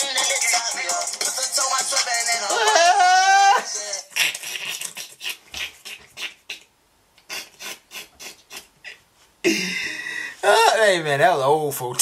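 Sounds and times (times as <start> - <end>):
man's wheezing laughter: 2.5 - 3.7.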